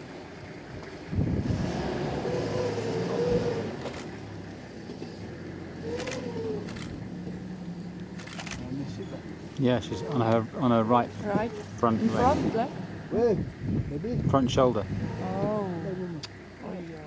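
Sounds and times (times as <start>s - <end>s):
vehicle engine rumbling: 0.0s - 17.0s.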